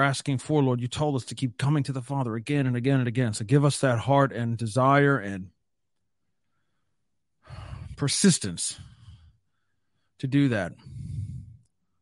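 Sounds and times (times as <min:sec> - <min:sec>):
man breathing in: 0:06.4 - 0:08.0, 0:08.7 - 0:10.2, 0:10.8 - 0:12.0.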